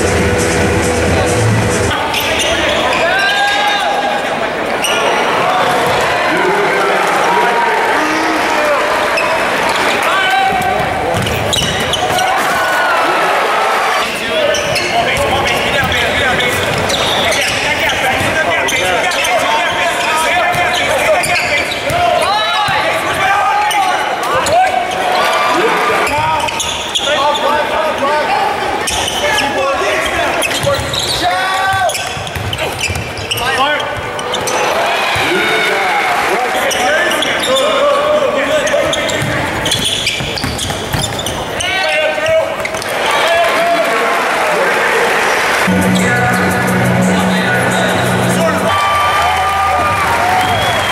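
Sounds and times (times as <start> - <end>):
crowd chatter echoing: 0.0 - 50.9
players' voices: 0.0 - 50.9
sneakers squeaking: 1.9 - 3.8, 9.1 - 12.8, 13.9 - 28.2, 28.8 - 35.3, 36.7 - 37.8, 38.5 - 43.0
basketball dribbling: 10.7 - 12.1, 31.9 - 33.2, 39.1 - 41.5.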